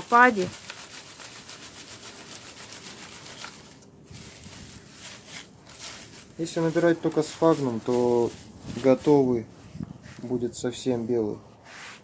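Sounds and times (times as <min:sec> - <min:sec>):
moss rustling on crate mesh: 0:00.0 - 0:12.0.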